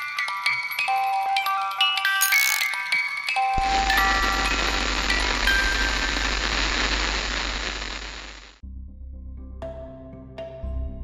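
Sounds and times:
chime-like music notes: 0.0 - 4.0
hissing static: 3.6 - 8.6
low hum: 3.6 - 8.6.

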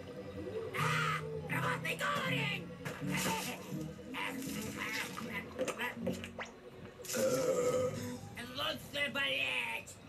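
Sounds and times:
background music: 0.0 - 10.0
cartoon goblin crying out: 0.7 - 1.6.

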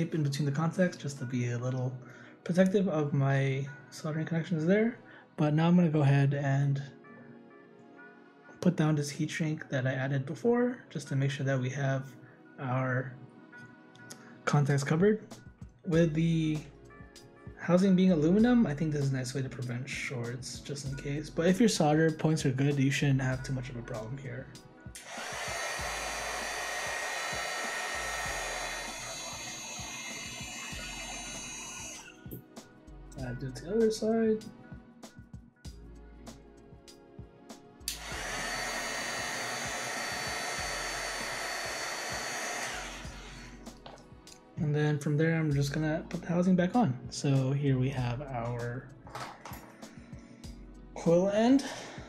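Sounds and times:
heat gun blowing hot air: 25.0 - 32.4, 37.9 - 43.7.

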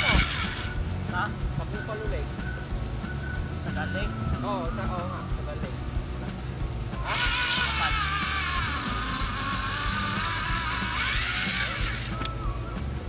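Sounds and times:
ice auger motor whining: 0.0 - 0.8, 7.0 - 12.5
background music: 0.0 - 13.0.

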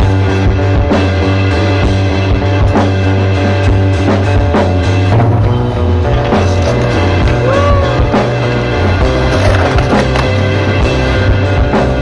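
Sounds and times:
rock music with drum beat: 0.0 - 12.0
skateboard rolling on concrete: 5.3 - 12.0.

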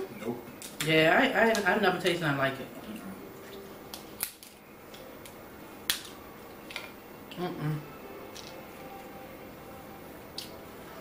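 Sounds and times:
crab shells cracking: 3.9 - 6.9.

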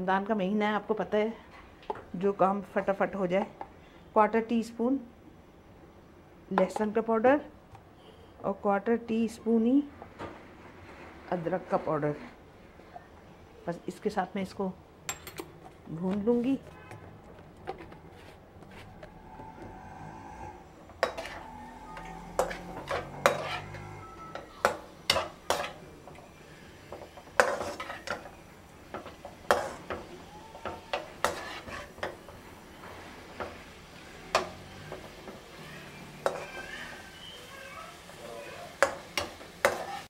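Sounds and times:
spatula scraping metal wok: 20.5 - 37.2, 38.8 - 40.0.

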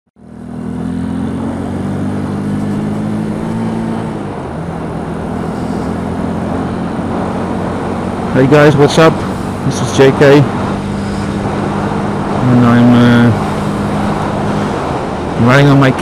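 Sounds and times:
motorcycle engine cruising: 0.2 - 16.0
wind and road noise: 0.2 - 16.0.

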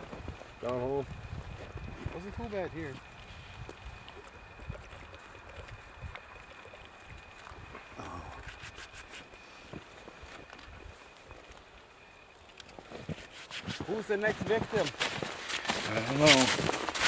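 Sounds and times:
wind rumble on microphone: 0.0 - 8.8
thin high whine: 0.0 - 15.0
footsteps crunching in snow: 12.8 - 17.0.

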